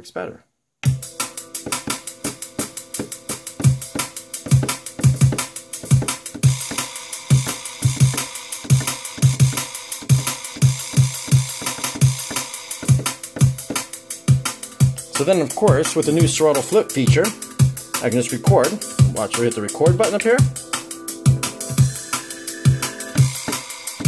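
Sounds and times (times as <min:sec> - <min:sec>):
drum and bass beat: 0:00.8 - 0:24.0.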